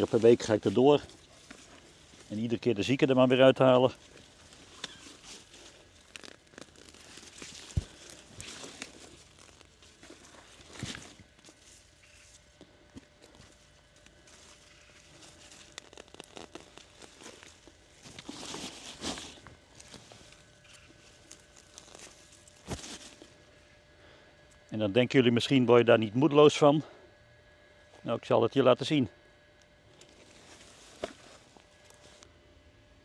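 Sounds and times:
plant foliage rustling and tearing: 0.0s - 23.4s, 29.9s - 32.3s
footsteps on soil: 3.9s - 23.3s.

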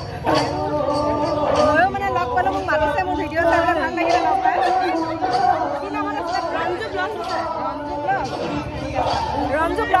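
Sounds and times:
crowd chatter: 0.0s - 10.0s
people talking: 0.0s - 10.0s.

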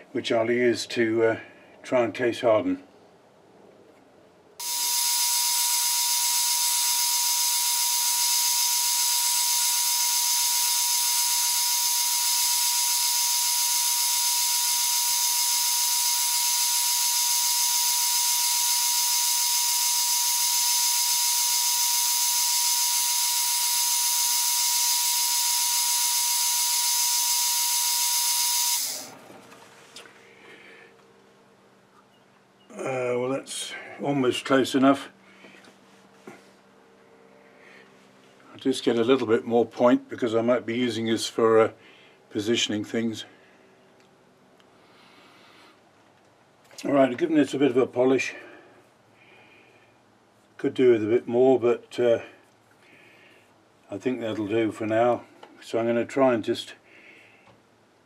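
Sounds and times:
metal lathe high whine: 4.6s - 29.1s.

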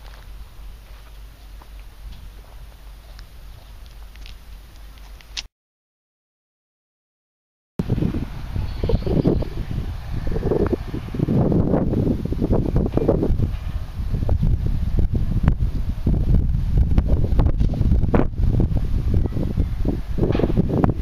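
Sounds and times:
wind buffeting microphone: 7.8s - 21.0s.

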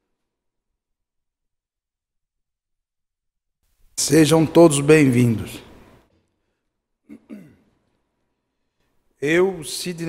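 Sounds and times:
man clearing his throat: 7.0s - 7.8s.

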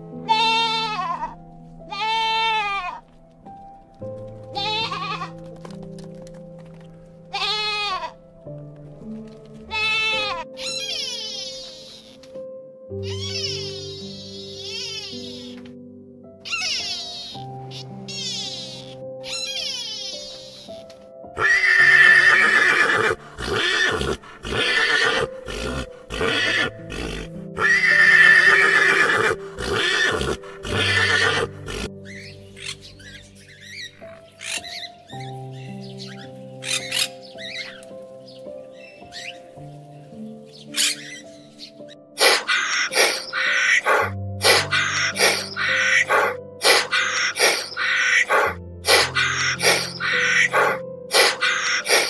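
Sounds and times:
soft piano music: 0.0s - 52.0s
pony whinnying: 4.6s - 5.4s, 7.3s - 8.2s, 9.7s - 12.2s, 13.0s - 15.6s, 16.5s - 20.8s, 21.4s - 34.9s, 42.2s - 52.0s
short animal calls: 42.2s - 52.0s.

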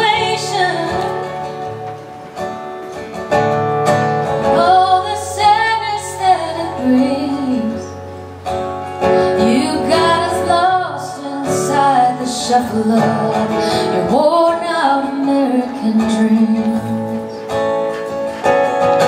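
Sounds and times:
woman singing: 0.0s - 1.9s, 4.4s - 8.2s, 9.0s - 17.7s
strummed acoustic guitar: 0.0s - 19.0s.

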